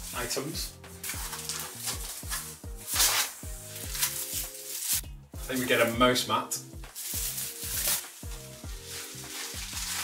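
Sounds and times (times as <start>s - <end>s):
background music with steady beat: 0.0s - 10.0s
plastic wrapping crinkling: 1.0s - 6.0s, 6.9s - 10.0s.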